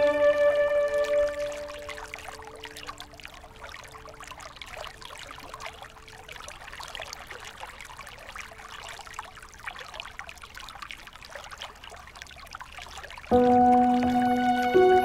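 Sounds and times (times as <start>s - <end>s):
small stream trickling: 0.0s - 15.0s.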